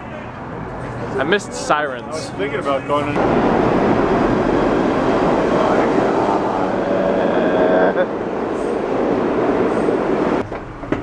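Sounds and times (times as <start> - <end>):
train whine: 0.0 - 11.0
train wheels rumbling on rails: 3.1 - 11.0.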